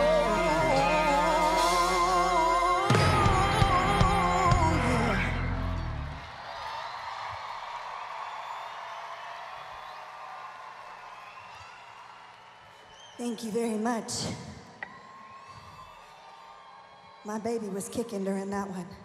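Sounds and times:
crowd cheering and screaming: 0.0 - 13.2, 14.8 - 17.3.

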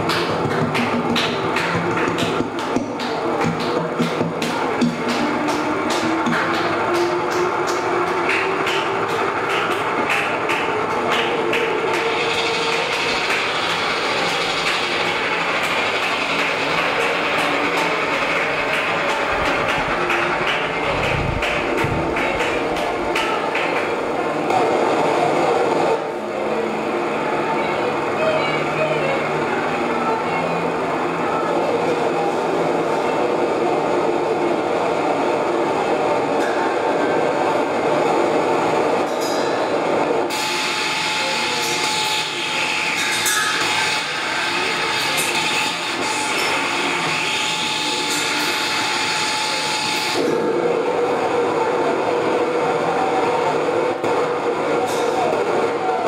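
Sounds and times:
deep rumble: 19.3 - 23.2.

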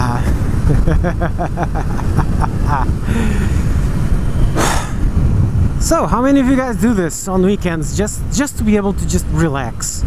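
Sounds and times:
wind buffeting: 0.0 - 9.8
road noise: 0.0 - 10.0.

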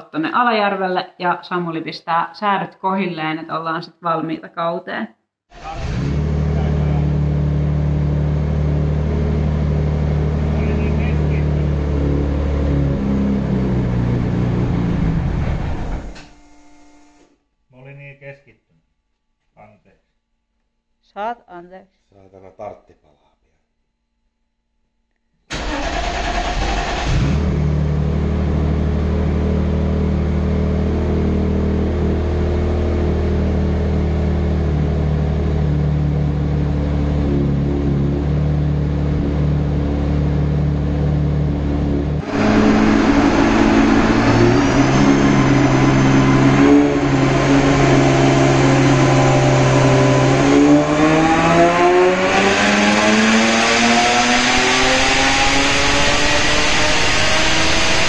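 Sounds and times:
car engine revving on dyno: 5.6 - 16.3, 25.5 - 58.0.

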